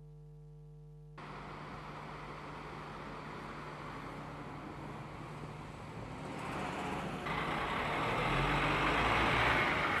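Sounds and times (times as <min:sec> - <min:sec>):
buses driving along a road: 0:01.2 - 0:10.0.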